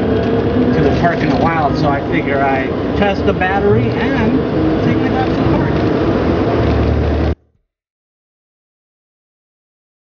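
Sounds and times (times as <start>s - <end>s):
road and wind noise: 0.0s - 7.6s
vehicle cabin hum: 0.0s - 7.6s.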